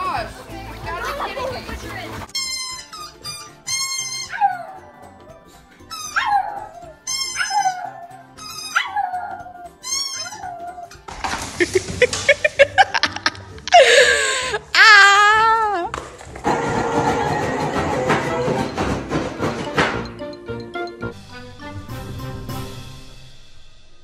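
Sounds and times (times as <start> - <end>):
toy ball squeaking: 2.3 - 5.0, 5.7 - 11.0
dog howling: 4.1 - 5.2, 5.9 - 11.0
laughter: 11.6 - 14.1.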